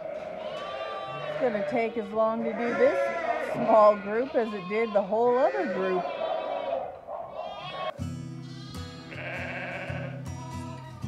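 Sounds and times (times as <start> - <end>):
sheep bleating: 0.0 - 11.0
plucked guitar music: 7.9 - 11.0.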